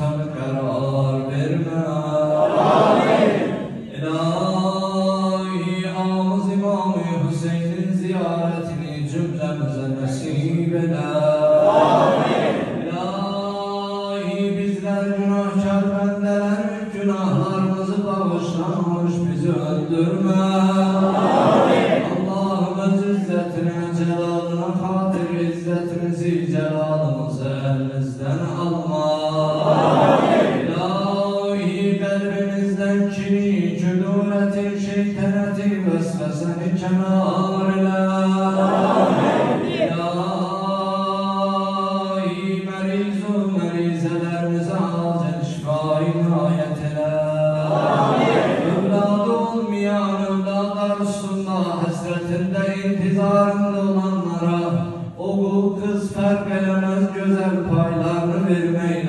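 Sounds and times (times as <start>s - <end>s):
man chanting: 0.0s - 21.3s, 22.0s - 59.0s.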